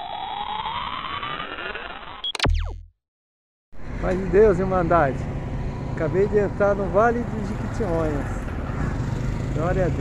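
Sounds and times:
electronic rising sweep tone: 0.0 - 2.9.

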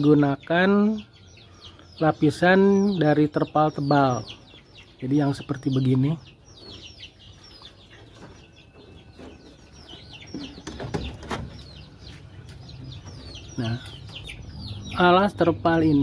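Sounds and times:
chicks peeping: 0.0 - 16.0.

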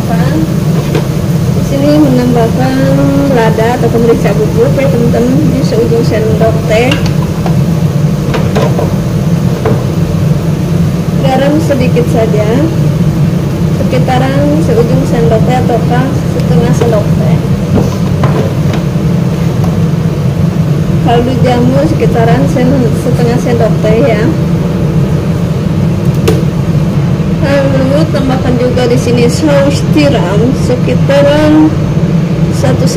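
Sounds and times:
low stove hum: 0.0 - 32.9.

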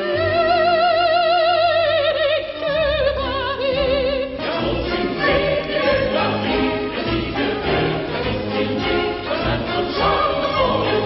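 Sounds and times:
chorus with orchestra: 0.0 - 11.0.

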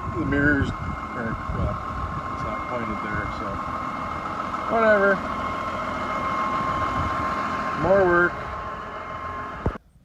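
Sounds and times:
high whine: 0.0 - 10.0
tractor engine idling: 0.0 - 10.0.

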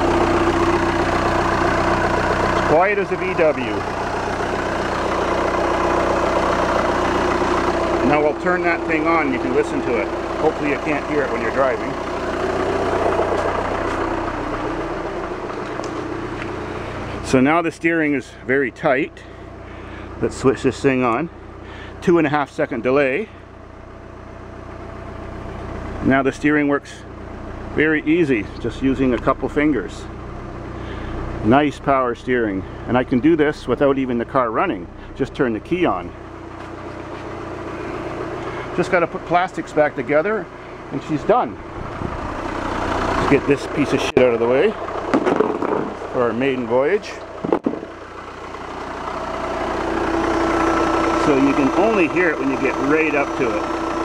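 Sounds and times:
diesel engine idling: 0.0 - 54.0
power steering pump hum: 0.0 - 54.0.

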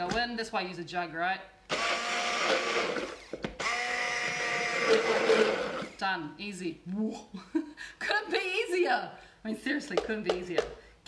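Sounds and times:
electric blender running: 1.7 - 6.0.

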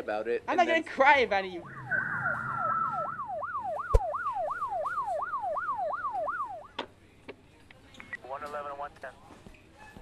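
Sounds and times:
police siren in yelp mode: 1.6 - 6.8.

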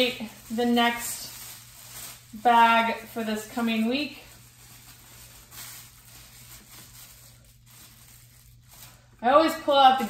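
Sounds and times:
plastic bag rustling: 0.0 - 10.0.

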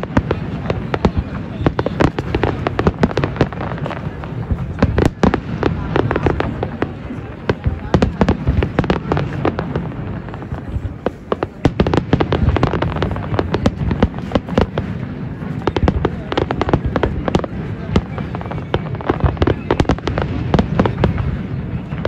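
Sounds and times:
fireworks bangs and crackles: 0.0 - 22.0.

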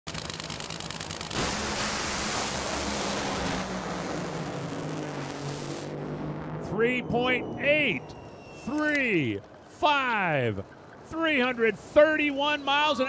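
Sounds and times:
engines full-throttle roar: 0.1 - 13.0
race car engines crackling: 0.1 - 13.0.

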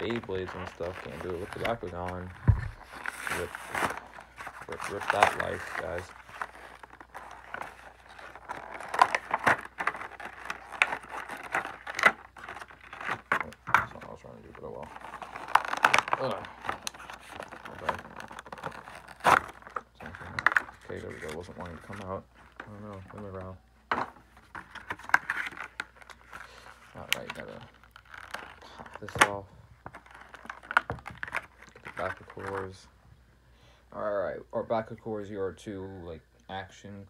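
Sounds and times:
cardboard packaging being torn: 0.0 - 23.5, 24.5 - 32.8.

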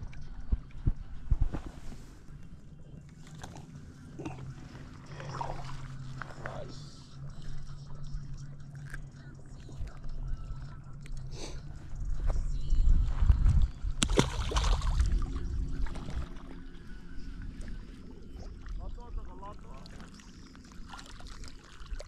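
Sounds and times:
wind rumble on microphone: 0.0 - 2.7, 11.6 - 19.3
fish splashing into water: 14.0 - 15.3.

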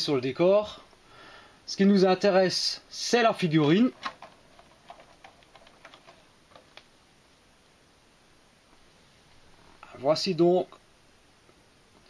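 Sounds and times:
plastic blister tray crackling: 3.8 - 6.9.

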